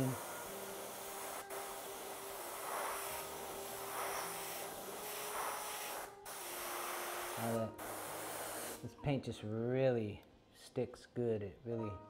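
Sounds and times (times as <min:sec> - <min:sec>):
airbrush hissing: 0:00.0 - 0:08.8.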